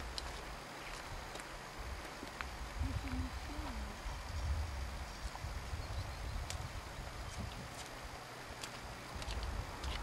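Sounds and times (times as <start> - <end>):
outdoor hiss: 0.0 - 10.0
wind buffeting microphone: 1.0 - 10.0.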